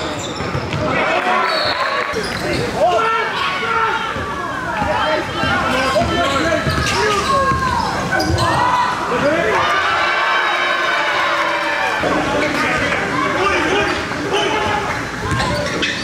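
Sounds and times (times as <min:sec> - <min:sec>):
voices in gym: 0:00.0 - 0:16.0.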